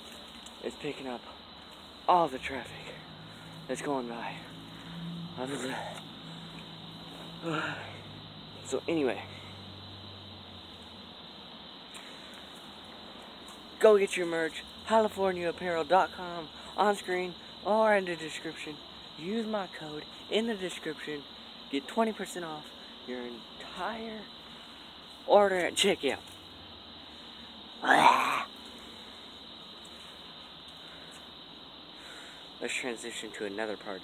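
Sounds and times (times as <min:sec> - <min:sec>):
crickets chirping: 0:00.0 - 0:34.0
distant traffic: 0:00.0 - 0:34.0.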